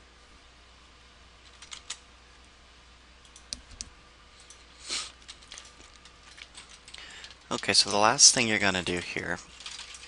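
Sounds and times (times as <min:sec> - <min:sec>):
keyboard keystrokes: 0:01.5 - 0:02.0.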